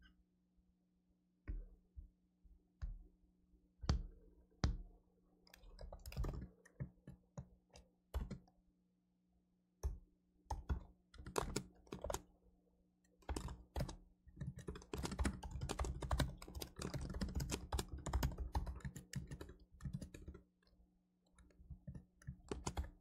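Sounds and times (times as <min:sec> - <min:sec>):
typing on a computer keyboard: 0:05.6 - 0:07.0, 0:08.2 - 0:08.5, 0:09.8 - 0:12.3, 0:13.1 - 0:20.5, 0:21.4 - 0:23.0.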